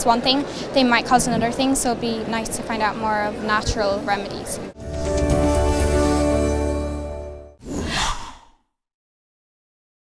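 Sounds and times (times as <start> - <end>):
musical logo sting: 4.8 - 7.6.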